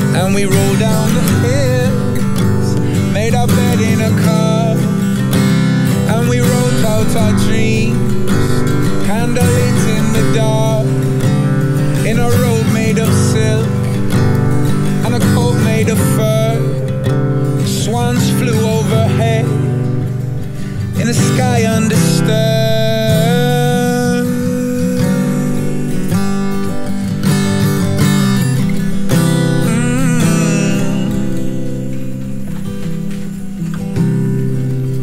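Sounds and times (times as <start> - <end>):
acoustic guitar strumming: 0.0 - 35.0.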